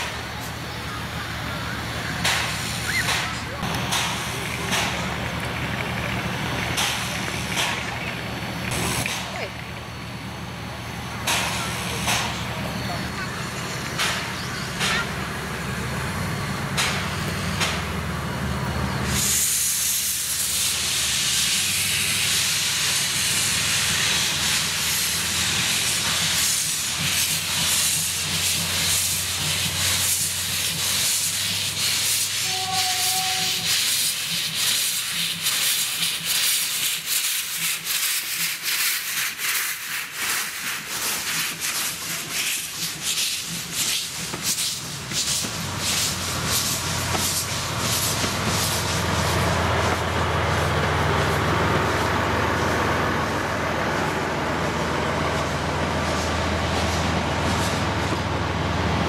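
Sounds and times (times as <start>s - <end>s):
steam hissing: 0.0s - 59.0s
steam locomotive rumble: 0.0s - 59.0s.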